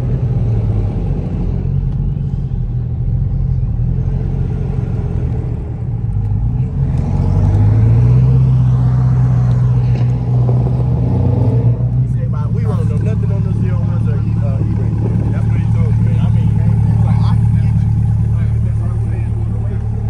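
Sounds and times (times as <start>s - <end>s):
car engine idling: 11.7s - 20.0s
people's voices: 11.8s - 20.0s.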